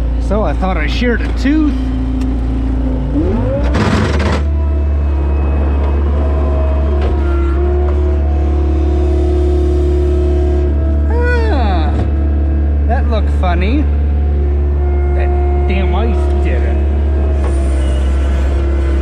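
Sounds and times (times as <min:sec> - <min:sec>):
diesel engine running: 0:00.0 - 0:19.0.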